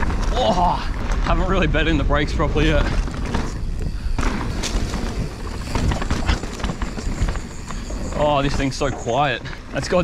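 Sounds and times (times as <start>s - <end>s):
bike knocks and rattles: 0.0s - 10.0s
bike tyres rumbling on dirt trail: 0.0s - 10.0s.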